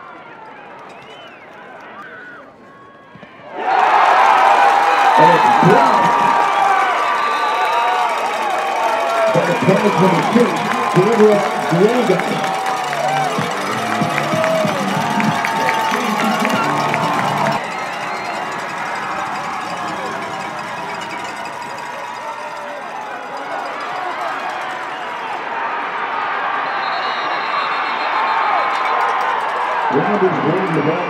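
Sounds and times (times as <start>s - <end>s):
stadium crowd cheering: 0.0s - 31.0s
music: 9.2s - 23.2s.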